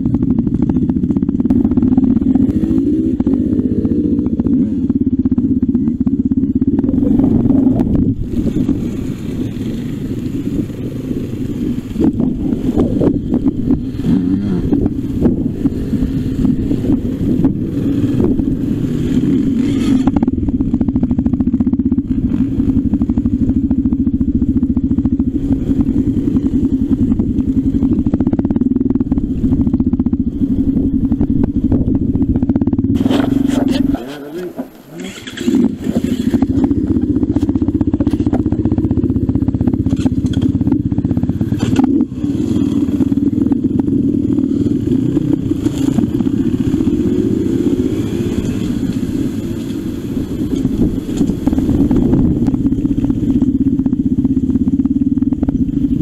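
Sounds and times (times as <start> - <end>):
motorcycle engine running: 0.0 - 56.0
bike knocks and rattles: 39.8 - 42.0.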